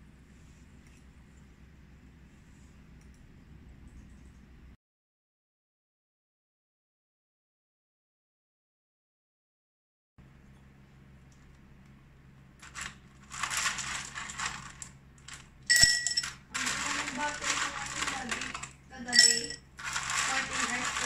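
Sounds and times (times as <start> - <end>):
pearls rattling on ice cubes: 12.6 - 21.0
spoon clinking against glass: 15.7 - 16.4, 19.1 - 19.7
spoon scraping tapioca pearls: 16.6 - 21.0.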